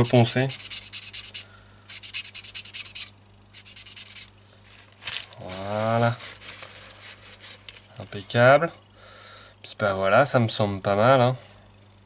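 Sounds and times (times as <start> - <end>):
fingers rustling on plastic: 3.9 - 8.4.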